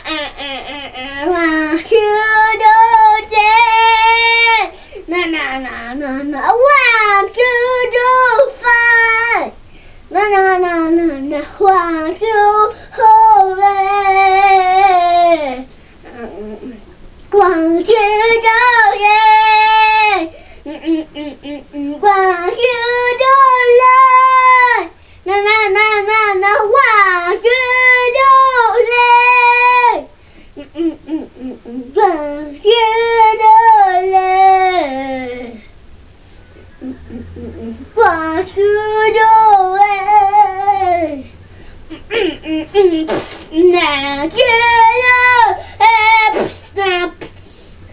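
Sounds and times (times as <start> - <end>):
boy singing loudly: 0.2 - 30.1, 37.1 - 41.3, 42.2 - 47.3.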